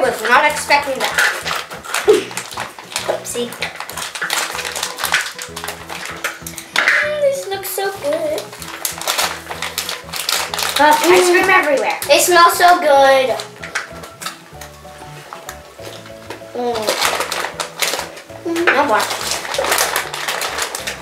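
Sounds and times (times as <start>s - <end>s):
background music: 0.0s - 21.0s
candies clattering into plastic bowl: 0.0s - 21.0s.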